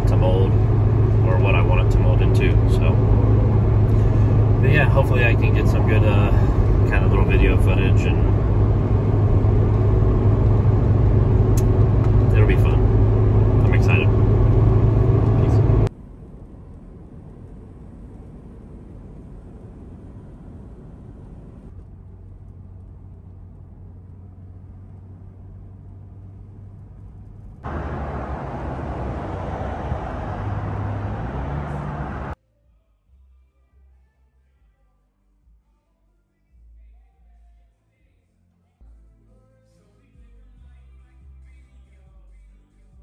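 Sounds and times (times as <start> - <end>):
car engine and road drone: 0.0 - 32.4.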